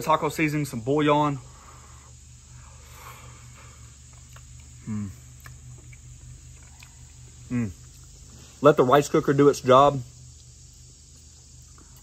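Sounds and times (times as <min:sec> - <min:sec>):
steady low hum: 0:00.0 - 0:12.0
chewing mouth clicks: 0:04.0 - 0:08.2
man humming mm: 0:04.8 - 0:05.5, 0:07.5 - 0:07.9.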